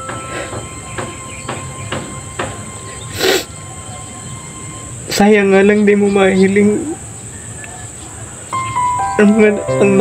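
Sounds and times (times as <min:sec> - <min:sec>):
man crying and sniffling: 0:03.1 - 0:03.5.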